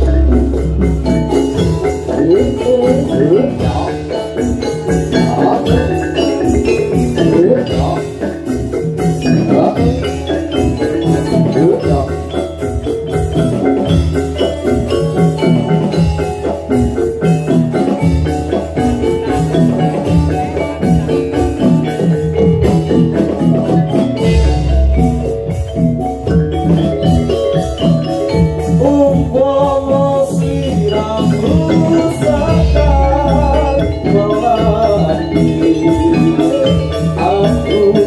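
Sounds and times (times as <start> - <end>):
low drum beat: 0.0 - 38.0
metallophones ringing: 0.0 - 38.0.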